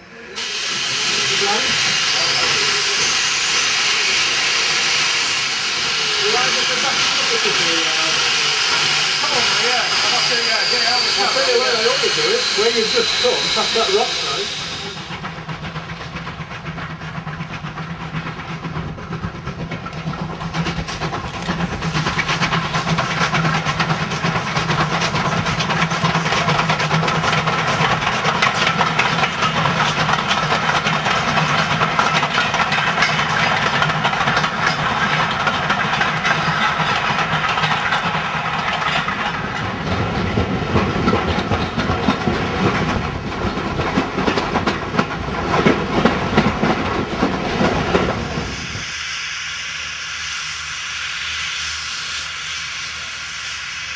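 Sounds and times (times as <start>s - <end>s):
steam train rumbling on rails: 0.0s - 53.9s
train wheel clatter: 0.4s - 48.9s.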